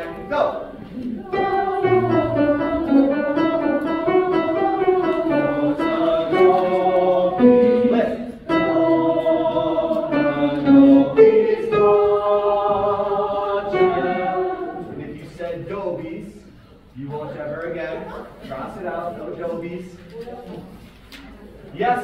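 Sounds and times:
women's choir singing: 0:01.0 - 0:15.0.

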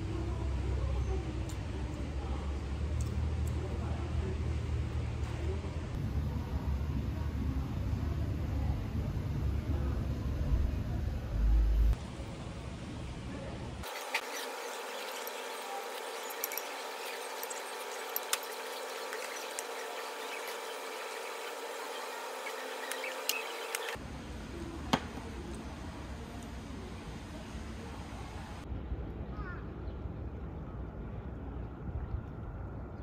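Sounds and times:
faint steady hum: 0:00.0 - 0:33.0
low rumble: 0:08.8 - 0:12.0.

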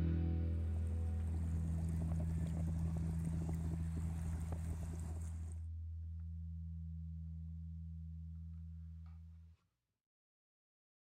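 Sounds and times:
faint crackling rushing noise: 0:00.0 - 0:05.7
steady low hum: 0:00.0 - 0:09.6.

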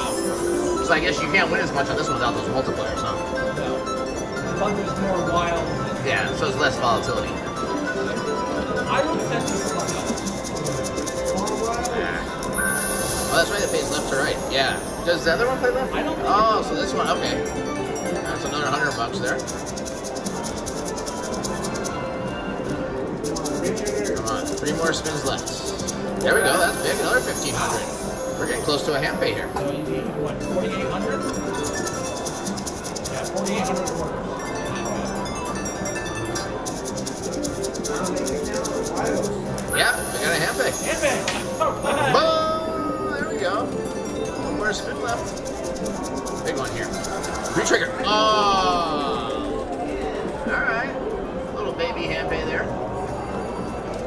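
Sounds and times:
slot machine music: 0:00.0 - 0:54.0
slot reels spinning and stopping: 0:06.2 - 0:15.5, 0:18.2 - 0:22.2, 0:23.1 - 0:29.5, 0:30.6 - 0:41.8, 0:43.1 - 0:49.8
voices talking: 0:23.2 - 0:34.4, 0:36.4 - 0:52.8.

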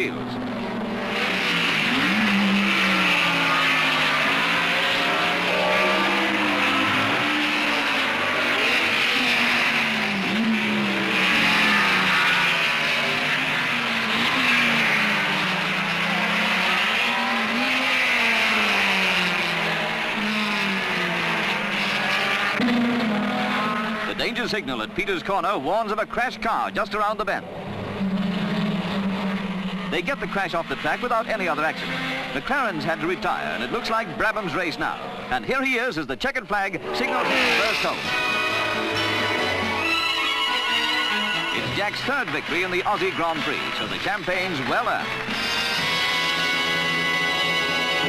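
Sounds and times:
racing car engines passing: 0:00.0 - 0:48.0.

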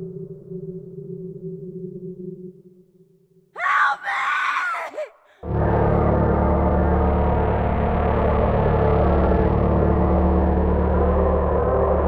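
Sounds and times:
low drone of held tones: 0:00.0 - 0:03.2, 0:05.4 - 0:12.0
person screaming: 0:03.6 - 0:05.4.

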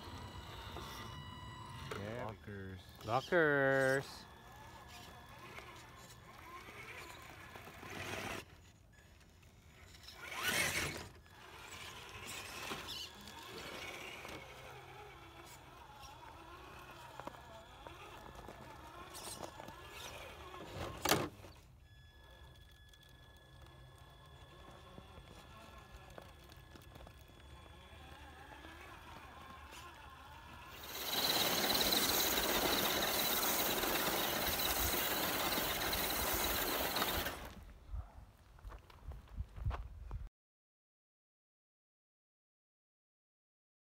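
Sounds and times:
electric motor and gear whining: 0:00.0 - 0:37.7
tyres crunching gravel: 0:10.2 - 0:21.5, 0:23.5 - 0:37.8.

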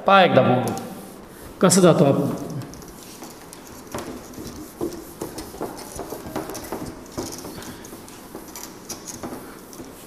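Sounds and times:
marker tapping on whiteboard: 0:03.9 - 0:08.5.

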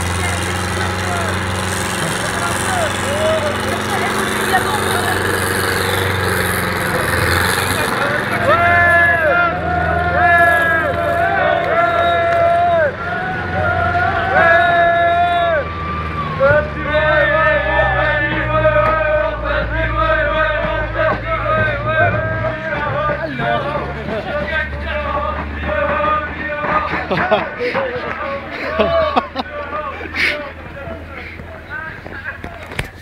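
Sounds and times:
loud shouted calls: 0:00.0 - 0:32.8
small car engine running: 0:00.0 - 0:33.0
voices shouting and chattering: 0:00.0 - 0:33.0.

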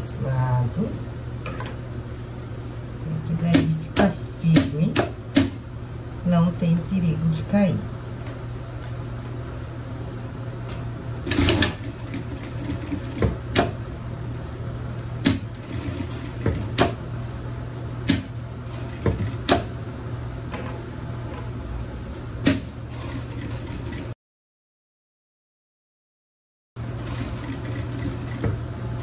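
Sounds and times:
sewing machine motor humming: 0:11.2 - 0:13.3, 0:15.3 - 0:16.9, 0:27.0 - 0:28.6.

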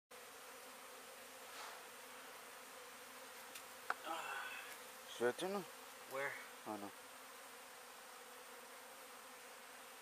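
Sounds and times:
honey bees buzzing: 0:00.1 - 0:10.0.

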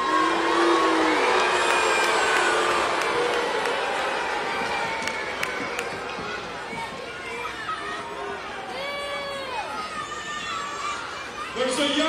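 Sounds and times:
arena crowd shouting and cheering: 0:00.0 - 0:12.0.

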